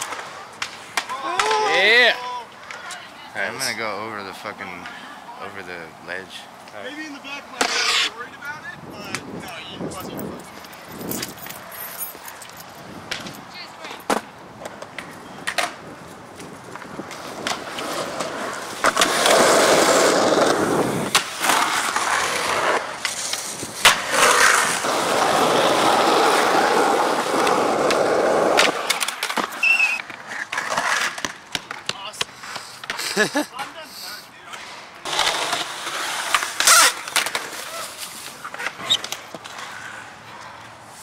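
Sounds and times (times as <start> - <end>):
skateboard wheels rolling on concrete: 0.0 - 41.0
skateboard clacking on concrete: 7.5 - 8.1, 9.0 - 33.8, 34.5 - 40.5.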